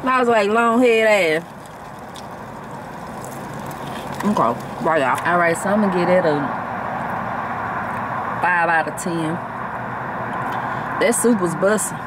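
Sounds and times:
car engine idling: 0:00.1 - 0:05.9.

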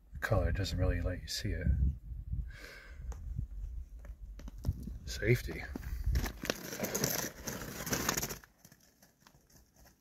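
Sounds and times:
rustling crackling noise: 0:04.0 - 0:10.0.

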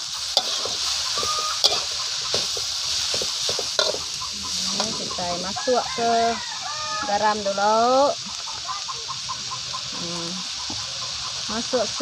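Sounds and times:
frying hiss in wok: 0:00.0 - 0:12.0
chicken clucking: 0:00.9 - 0:06.2, 0:06.8 - 0:11.8.

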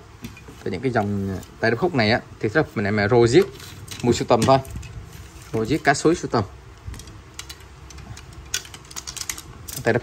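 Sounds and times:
fishing rod sections clicking: 0:06.9 - 0:10.0.

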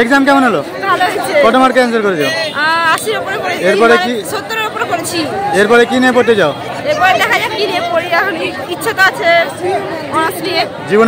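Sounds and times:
chatter of people: 0:00.0 - 0:11.0
woman talking into a microphone: 0:02.6 - 0:05.3, 0:06.8 - 0:10.7.

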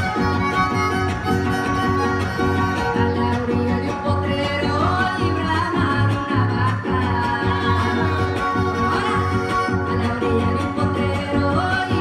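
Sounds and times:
strummed string instruments: 0:00.0 - 0:12.0.

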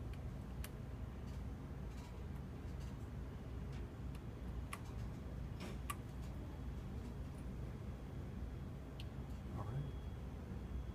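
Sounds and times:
low steady hum: 0:00.0 - 0:10.9.

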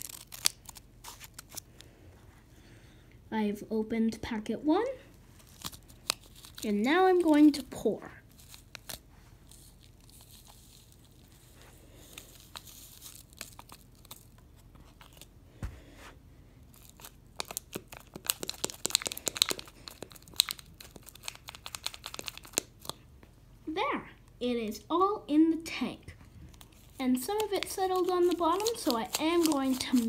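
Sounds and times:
paper packet crinkling: 0:00.0 - 0:01.7, 0:05.3 - 0:15.3, 0:16.7 - 0:23.0, 0:26.5 - 0:30.0.

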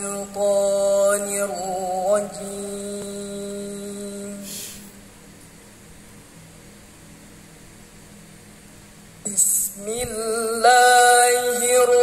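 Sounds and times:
woman reciting melodically: 0:00.0 - 0:04.7, 0:09.2 - 0:12.0
low room hum: 0:00.0 - 0:12.0
brief hiss: 0:04.5 - 0:05.0.

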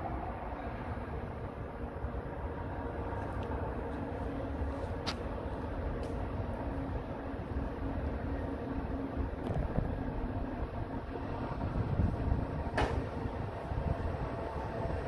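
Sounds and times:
train rumbling: 0:00.0 - 0:15.0.

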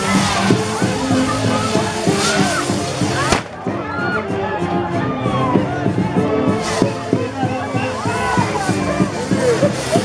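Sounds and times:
fizzing handheld fireworks: 0:00.0 - 0:04.0, 0:06.4 - 0:10.0
band music playing: 0:00.0 - 0:10.0
crowd voices: 0:00.0 - 0:10.0
firecracker bang: 0:03.2 - 0:03.8.

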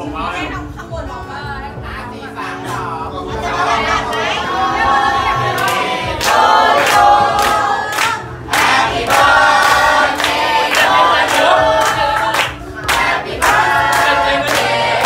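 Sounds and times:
group singing birthday song: 0:02.5 - 0:15.0
hand clapping in time: 0:05.6 - 0:15.0.

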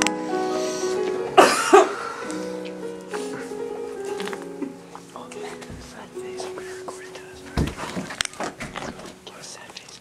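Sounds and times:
slow background music: 0:00.0 - 0:10.0
loud coughs: 0:01.4 - 0:02.1.

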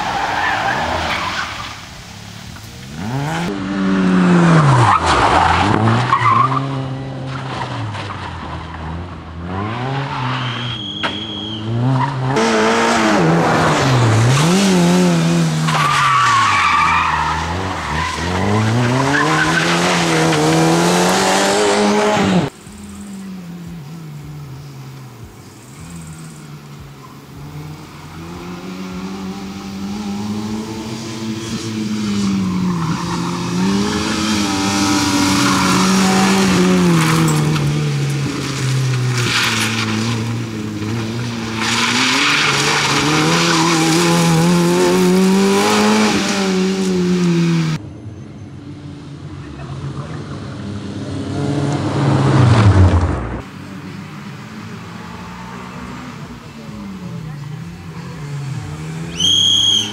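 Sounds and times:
rally car engine revving: 0:02.5 - 0:47.8, 0:49.4 - 0:59.9.

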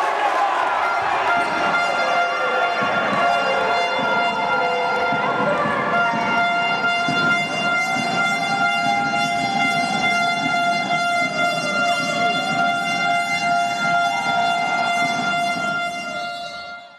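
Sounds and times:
long loud horn tone: 0:00.3 - 0:16.9.

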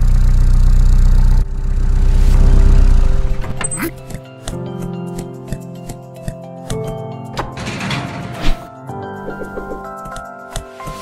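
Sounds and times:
van engine running: 0:00.0 - 0:03.8.

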